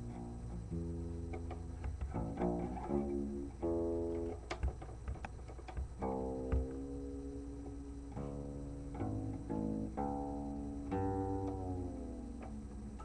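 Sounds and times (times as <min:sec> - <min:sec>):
guitar playing: 0:00.0 - 0:13.0
string or finger clicks: 0:00.0 - 0:13.0.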